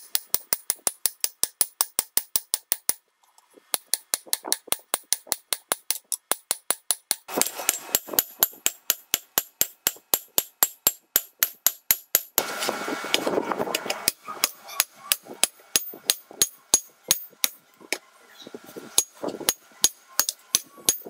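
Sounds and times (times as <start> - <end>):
hammer striking metal on anvil: 3.7 - 12.4, 13.7 - 17.6, 19.0 - 21.0.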